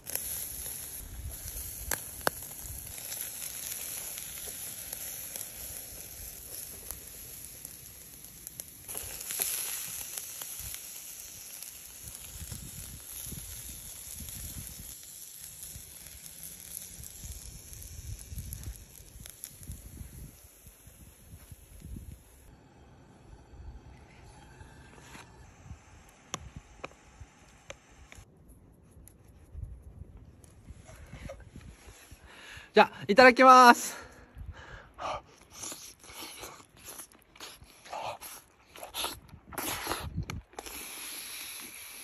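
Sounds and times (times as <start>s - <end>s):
meat sizzling on a grill: 0.0s - 22.5s, 40.8s - 42.0s
sharp crackles: 0.0s - 22.5s.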